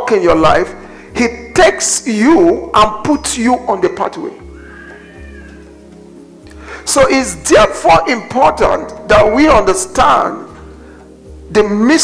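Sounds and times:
held keyboard chords: 0:00.0 - 0:12.0.

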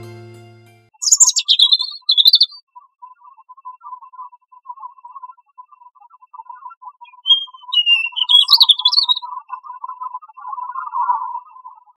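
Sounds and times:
quiet background music: 0:00.0 - 0:01.3
robin singing: 0:01.0 - 0:02.6, 0:07.0 - 0:09.3.

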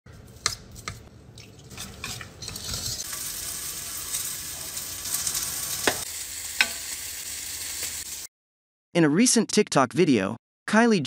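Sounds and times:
whisk scraping in a bowl: 0:01.7 - 0:03.1.

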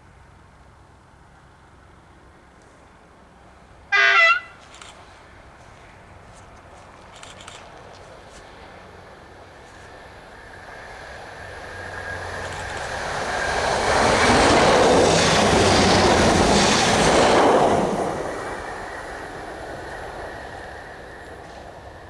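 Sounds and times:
train passing at speed: 0:00.2 - 0:22.0.

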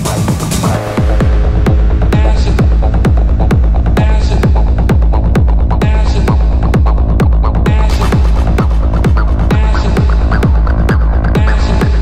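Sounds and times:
techno music: 0:00.0 - 0:12.0.

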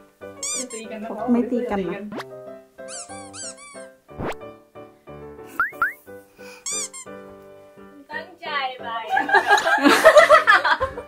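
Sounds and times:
light background music: 0:00.0 - 0:11.0
short upward squeaks: 0:02.9 - 0:04.3
short arched chirps: 0:02.9 - 0:04.4, 0:05.6 - 0:06.0.

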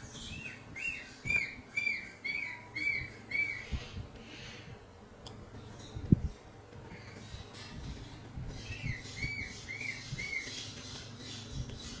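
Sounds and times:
baby monkey squeaking: 0:00.3 - 0:03.9, 0:08.6 - 0:12.0.

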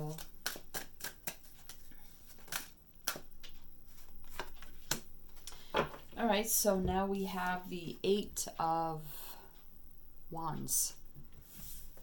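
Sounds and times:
cards being shuffled: 0:00.0 - 0:06.1.

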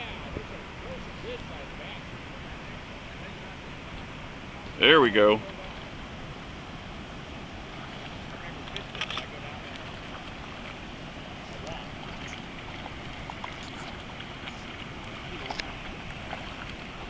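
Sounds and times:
river noise: 0:00.0 - 0:17.0
wind: 0:00.0 - 0:17.0.

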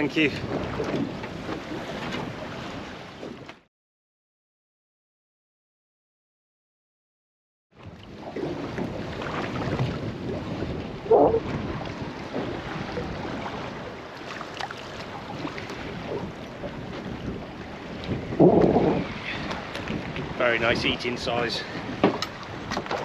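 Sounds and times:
wind buffeting microphone: 0:00.0 - 0:03.6, 0:07.8 - 0:23.0
water washing against boat hull: 0:00.0 - 0:03.7, 0:07.8 - 0:23.0.

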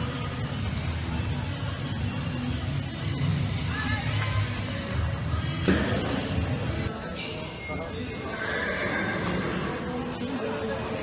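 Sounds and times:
murmur of voices: 0:03.5 - 0:11.0
horse whinnying: 0:08.2 - 0:09.9.

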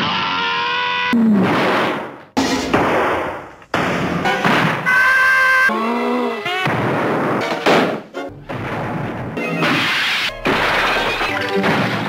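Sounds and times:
cartoon cannon blast: 0:06.6 - 0:12.0.

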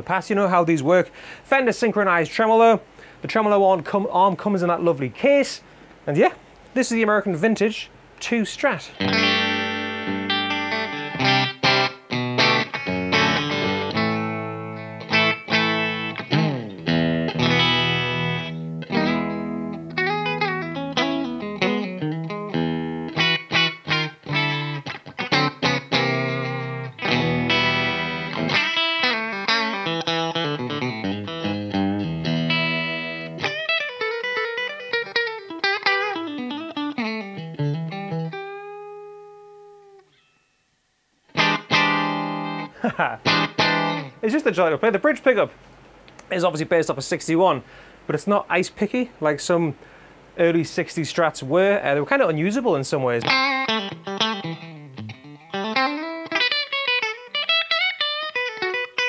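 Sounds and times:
clean electric guitar playing: 0:08.9 - 0:40.6, 0:41.2 - 0:44.7, 0:53.2 - 0:59.0.

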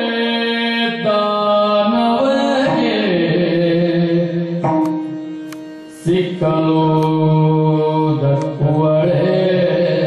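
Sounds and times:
man singing long gliding notes: 0:00.0 - 0:05.3, 0:05.9 - 0:10.0.

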